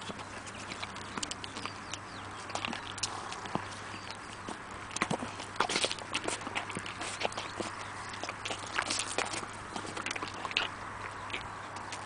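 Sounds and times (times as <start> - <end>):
horse licking plastic pouch: 0.0 - 12.0.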